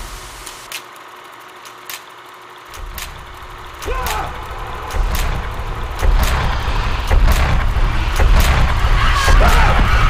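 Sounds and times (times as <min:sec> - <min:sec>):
film projector whirring: 0:00.0 - 0:09.7
projector clicks: 0:00.4 - 0:08.8
deep low rumble: 0:02.9 - 0:10.0.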